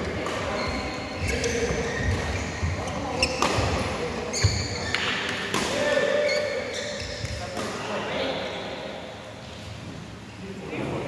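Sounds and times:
court shoes squeaking: 0:00.0 - 0:07.8.

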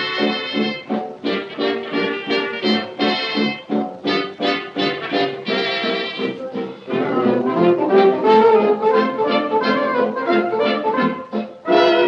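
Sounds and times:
dance band music on gramophone: 0:00.0 - 0:12.0.

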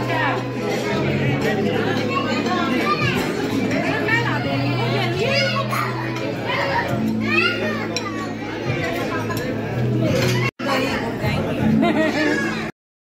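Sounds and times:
crowd chatter: 0:00.0 - 0:12.7.

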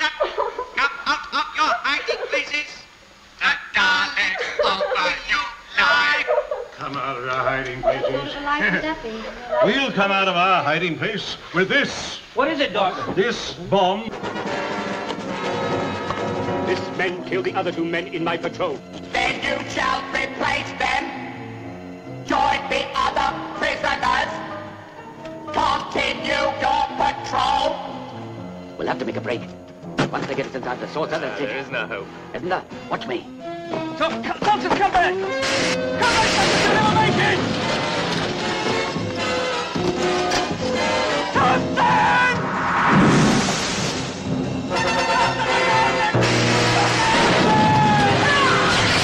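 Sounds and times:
film score music with held notes: 0:03.4 - 0:42.8, 0:44.0 - 0:49.0
film soundtrack music with held chords: 0:14.1 - 0:30.0, 0:37.4 - 0:42.3.

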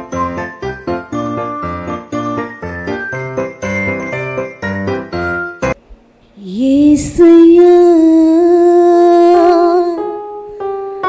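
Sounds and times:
woman singing: 0:06.4 - 0:10.2.

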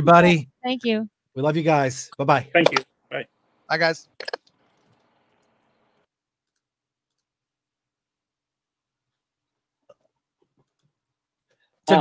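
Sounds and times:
man speaking: 0:00.0 - 0:00.5, 0:01.4 - 0:04.1.

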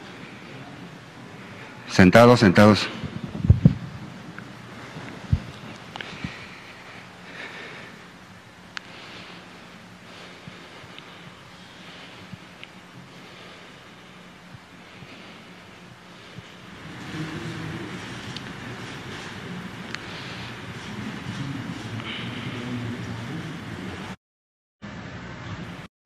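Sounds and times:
steady low hum: 0:00.0 - 0:24.2.

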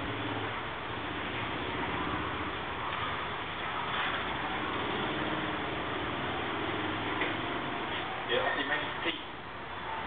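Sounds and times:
computer cooling fans whirring: 0:00.0 - 0:10.0.

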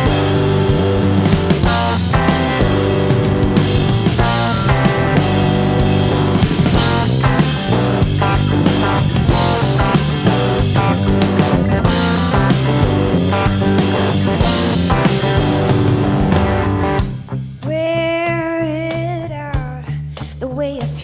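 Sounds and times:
electric guitar: 0:00.0 - 0:19.7
drum kit: 0:00.0 - 0:21.0
electric bass: 0:00.0 - 0:21.0.

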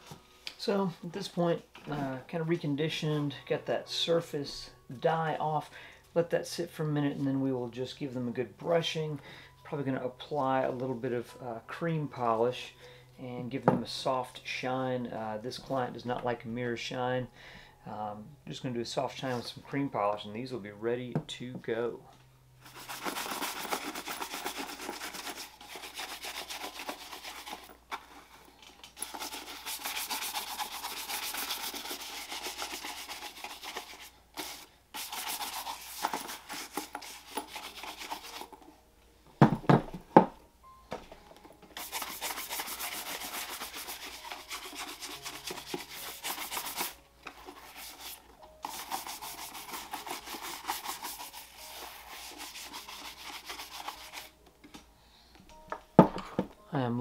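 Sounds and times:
shoe brush rubbing leather: 0:22.6 - 0:28.3, 0:29.0 - 0:38.6, 0:41.8 - 0:54.3.

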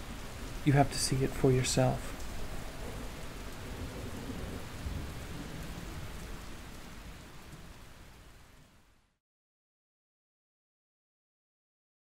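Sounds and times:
low rumble of thunder: 0:00.0 - 0:07.8
steady rain: 0:00.0 - 0:09.2.

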